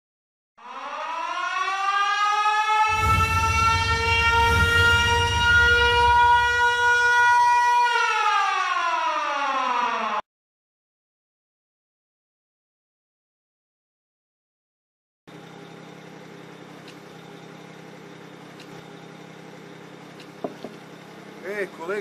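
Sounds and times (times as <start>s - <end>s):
siren wailing: 0.6s - 10.2s
low rumble: 2.9s - 6.8s.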